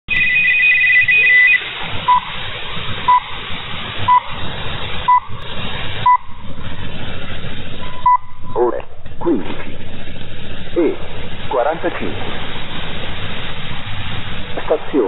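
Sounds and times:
radio hiss: 0.8s - 15.0s
short time signal pips: 6.0s - 6.4s.

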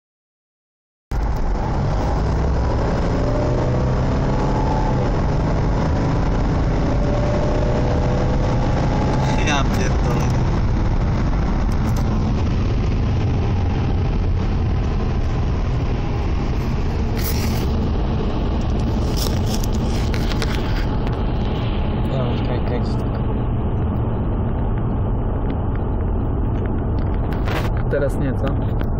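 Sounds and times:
car engine drone rising in pitch: 1.1s - 28.9s
road and wind noise: 1.1s - 28.9s.

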